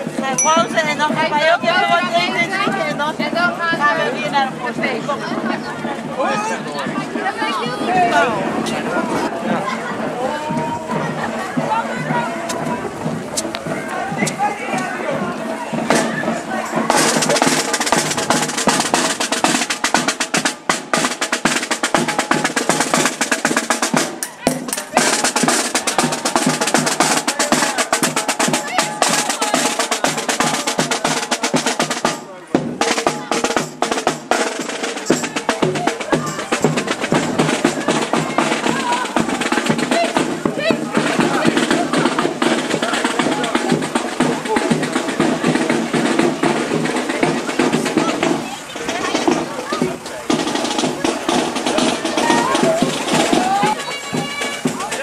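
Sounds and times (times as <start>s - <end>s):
snare drums rolling: 0.0s - 55.0s.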